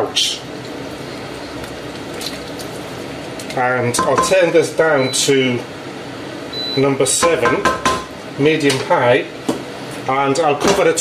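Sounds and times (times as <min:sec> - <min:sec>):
liquid squishing while stirring: 0:00.5 - 0:04.4
spatula knocking on pot: 0:07.2 - 0:08.1.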